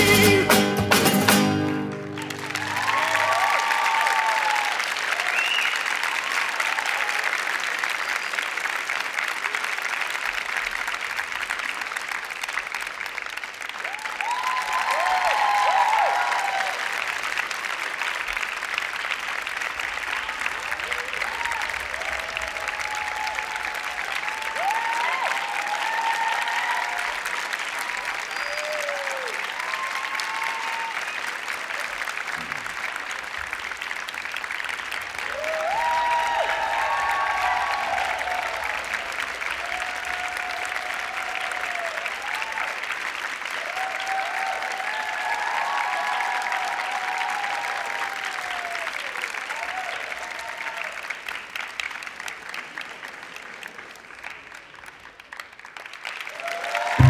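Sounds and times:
audience applauding: 1.3s - 57.0s
people cheering: 1.7s - 51.8s, 55.8s - 57.0s.

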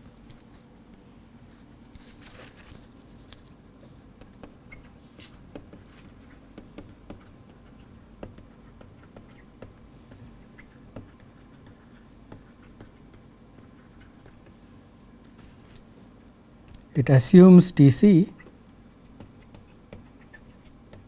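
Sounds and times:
low background hum: 0.0s - 21.0s
stylus tapping and scratching screen: 4.2s - 14.6s, 18.0s - 21.0s.

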